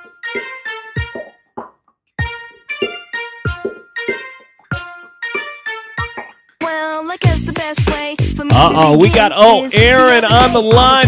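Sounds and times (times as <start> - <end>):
keyboard song over deep beat: 0.0 - 11.0.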